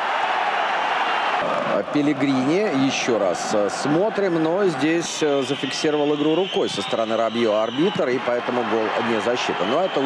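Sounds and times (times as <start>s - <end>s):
stadium crowd voices: 0.0s - 10.0s.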